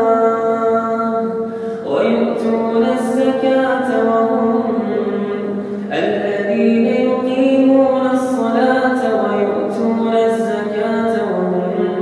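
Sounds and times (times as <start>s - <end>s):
solo voice chanting recitation: 0.0s - 12.0s.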